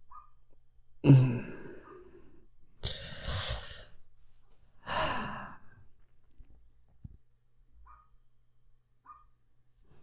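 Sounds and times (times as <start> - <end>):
man sighing: 1.0 - 3.9.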